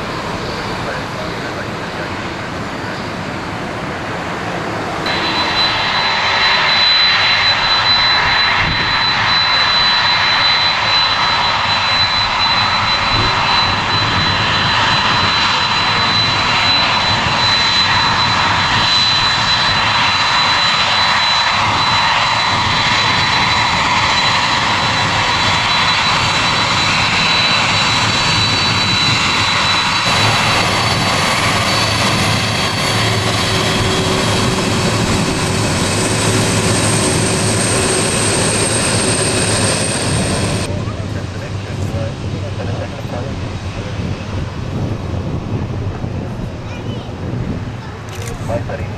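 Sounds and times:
high jet fan whine: 0.0 - 48.9
jet engines running: 0.0 - 48.9.

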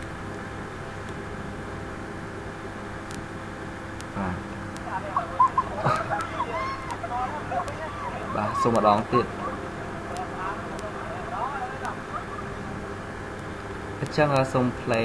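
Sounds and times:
steady low hum: 0.0 - 15.0
voices: 4.1 - 15.0.

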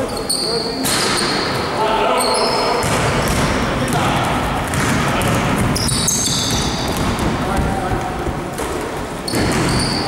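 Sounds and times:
sneakers squeaking on floor: 0.0 - 7.6, 9.2 - 10.0
basketball bouncing: 2.8 - 10.0.

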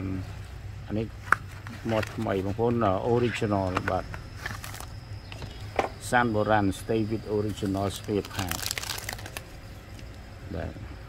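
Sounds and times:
plastic wrapping crinkling: 1.4 - 2.5, 3.7 - 4.9, 7.4 - 10.1.

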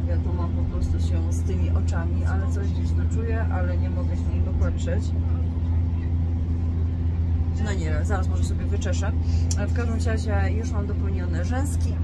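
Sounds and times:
train running drone inside carriage: 0.0 - 12.0.

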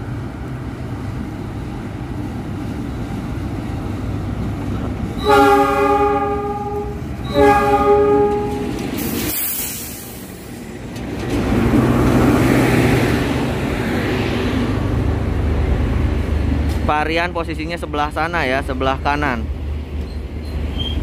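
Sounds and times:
train rolling past rumbling: 0.0 - 21.0
locomotive horn blasts: 5.2 - 8.8.

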